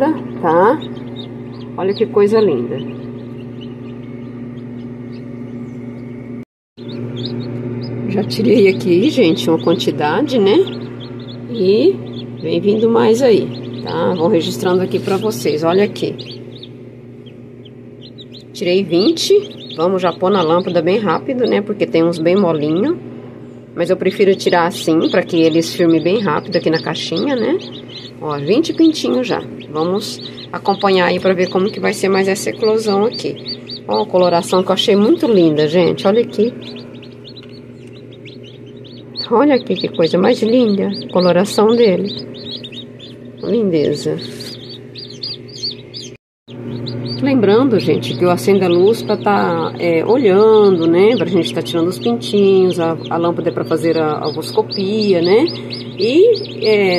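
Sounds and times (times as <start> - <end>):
chicks peeping: 0.0 - 56.9
steady low hum: 0.0 - 56.9.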